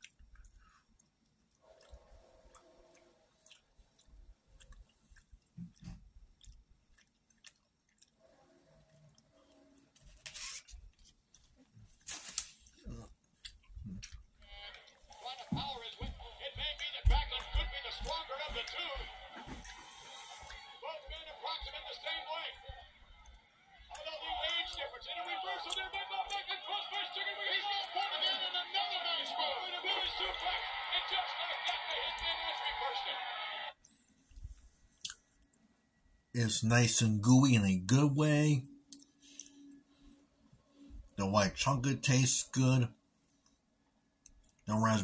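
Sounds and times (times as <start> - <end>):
chewing and mouth clicks: 0.0 - 11.8, 13.2 - 15.2, 19.6 - 20.8, 23.1 - 24.8, 33.8 - 35.6, 38.9 - 39.6, 44.2 - 44.7
television background music: 14.0 - 45.0.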